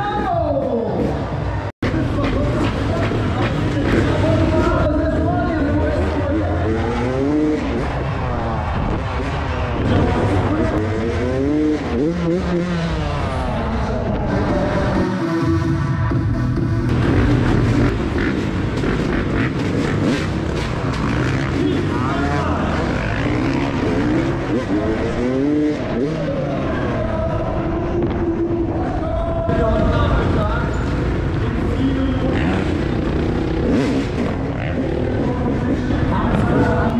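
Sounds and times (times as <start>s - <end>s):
dirt bike engine revving: 0.0s - 28.9s, 29.5s - 36.9s.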